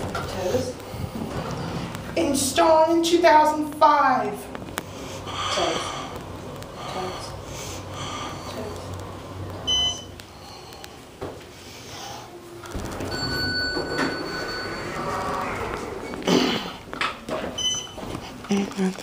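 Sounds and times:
elevator hum with high whine: 0.0s - 18.7s.

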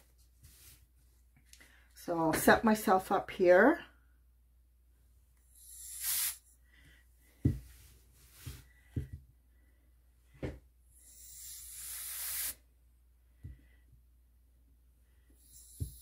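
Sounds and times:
canned air hissing: 5.6s - 6.5s, 11.0s - 12.6s.

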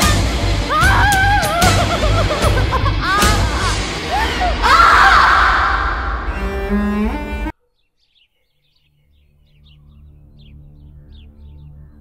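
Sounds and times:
dramatic film score: 0.0s - 7.5s
woman screaming: 0.7s - 6.2s
birds chirping: 6.1s - 12.0s
soft music: 8.8s - 12.0s.

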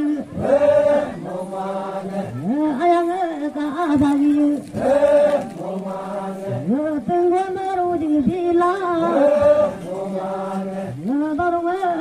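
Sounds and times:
voices chanting a prayer: 0.0s - 12.0s.

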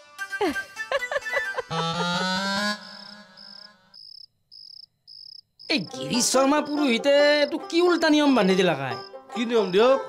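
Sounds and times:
background music: 0.0s - 4.0s, 5.7s - 10.0s
cricket chirping: 2.4s - 9.8s.

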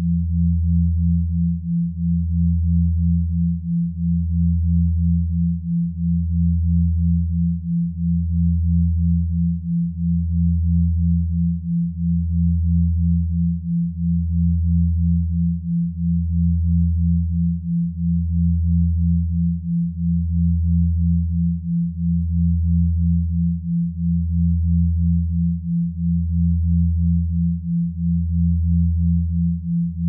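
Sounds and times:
deep synthesized hum: 0.0s - 30.0s.

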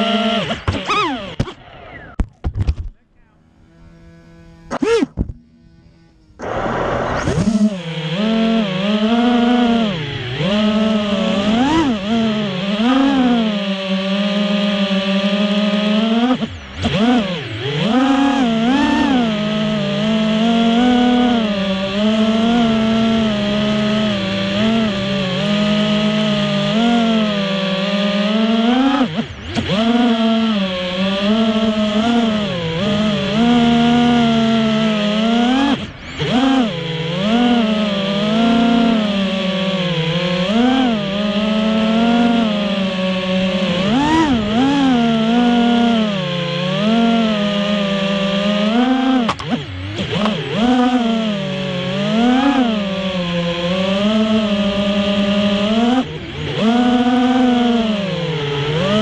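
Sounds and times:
drone motors buzzing whine: 0.0s - 59.0s.

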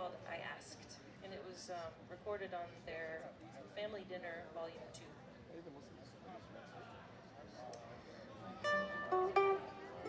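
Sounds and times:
plucked string note: 8.6s - 10.0s.

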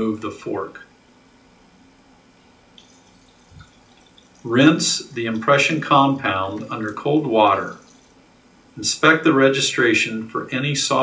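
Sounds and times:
tap water running: 2.8s - 8.2s.

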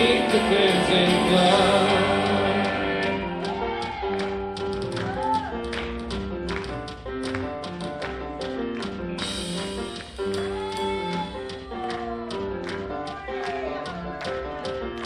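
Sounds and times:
electric guitar chords: 0.0s - 3.7s
keyboard chords: 0.0s - 15.0s
sharp percussion hits: 9.2s - 11.7s.

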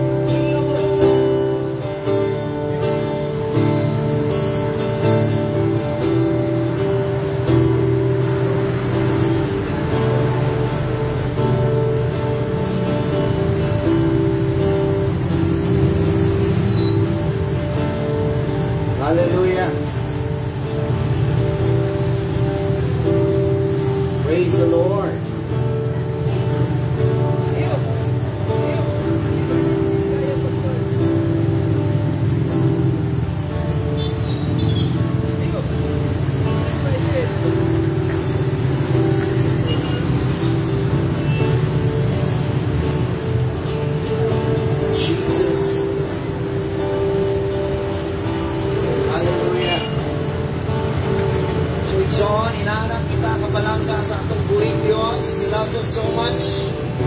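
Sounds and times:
acoustic guitar chords: 0.0s - 57.0s
street traffic: 0.0s - 57.0s.

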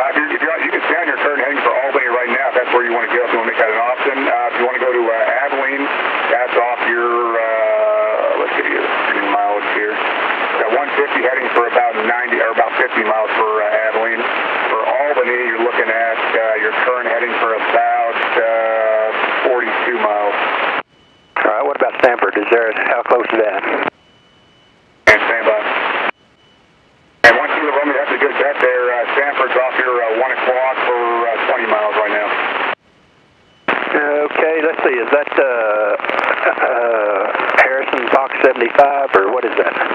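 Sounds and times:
garbled radio voices: 0.0s - 20.8s, 21.4s - 24.0s, 25.0s - 26.2s, 27.2s - 32.8s, 33.7s - 39.9s.

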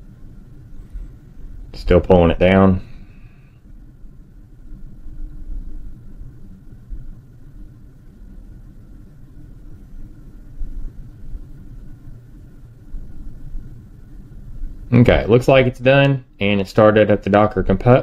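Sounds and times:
low background rumble: 0.0s - 18.0s.

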